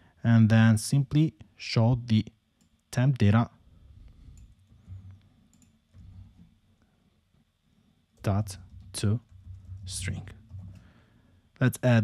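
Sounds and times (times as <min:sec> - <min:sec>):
low room noise: 0:00.0 - 0:12.0
computer keyboard and mouse clicks: 0:04.3 - 0:06.5.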